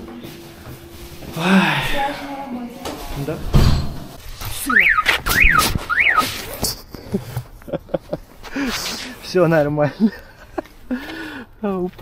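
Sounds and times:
sliding whistle-like notes: 4.6 - 6.4.

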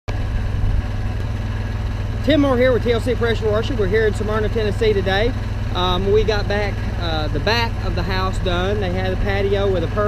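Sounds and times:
pressure washer engine idling: 0.1 - 10.0.

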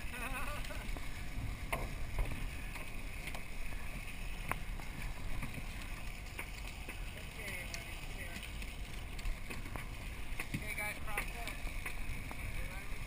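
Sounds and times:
boat engine rumble: 0.0 - 13.0
water rushing along hull: 0.0 - 13.0.

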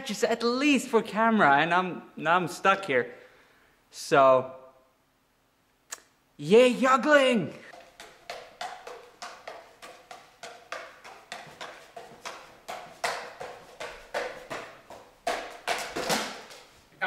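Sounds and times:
juggling clubs caught in hand: 7.7 - 16.8.

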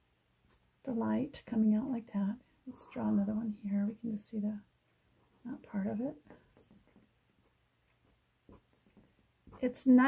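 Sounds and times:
marker scratching on paper: 6.5 - 9.8.

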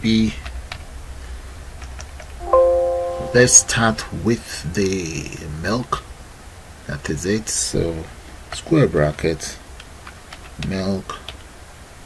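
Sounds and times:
computer alert chime: 2.4 - 4.3.

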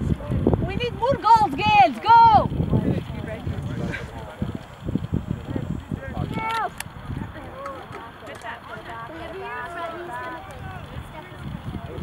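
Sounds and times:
distant voices shouting: 0.4 - 3.1, 4.4 - 12.0.

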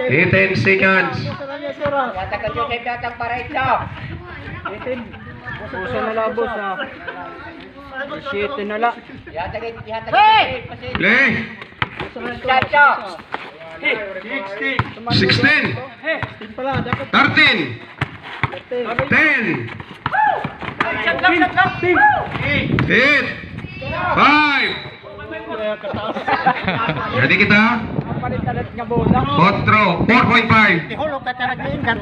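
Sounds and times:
people shouting and calling out: 0.0 - 17.9, 18.6 - 32.0
basketball dribbled on concrete: 1.3 - 2.0, 11.7 - 12.8, 14.7 - 23.7.

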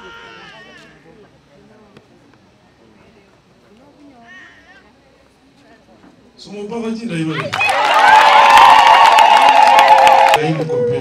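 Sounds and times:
distant crowd voices talking: 0.0 - 9.2.

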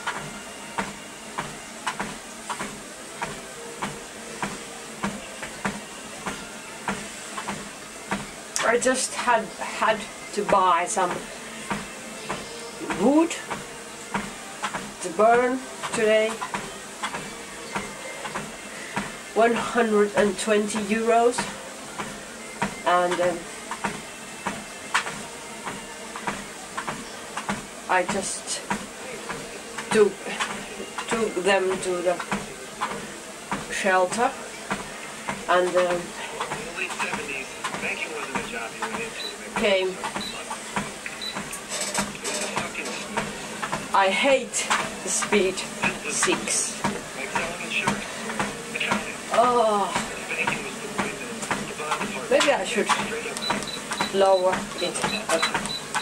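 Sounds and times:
footfalls on treadmill belt: 0.0 - 8.3
treadmill motor and belt hum: 0.0 - 56.0.

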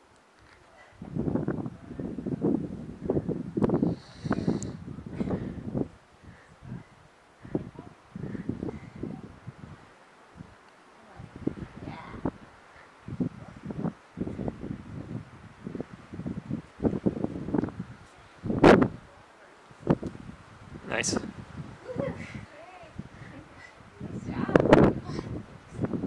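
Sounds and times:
wind buffeting microphone: 0.0 - 26.0
loud hissing burst: 3.7 - 4.8.

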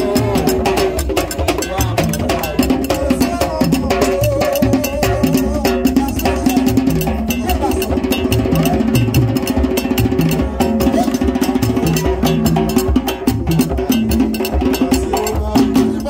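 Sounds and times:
hand drums playing fast rhythm: 0.0 - 16.0.

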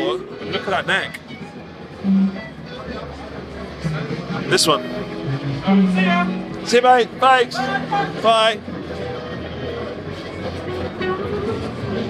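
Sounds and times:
chatter: 0.0 - 12.0
faint background music: 0.0 - 12.0
amplified guitar low note: 2.0 - 2.8, 3.8 - 6.7.

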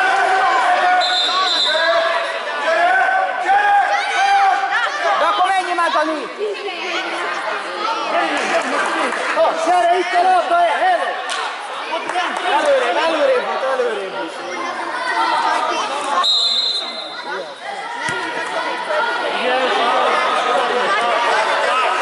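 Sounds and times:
voices calling and chattering: 0.0 - 22.0
high whistle blast: 16.2 - 17.2.

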